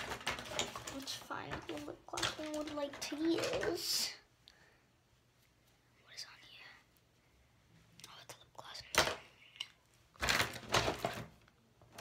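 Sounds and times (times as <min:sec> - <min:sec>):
girl whispering: 0:06.0 - 0:06.9, 0:08.0 - 0:09.7.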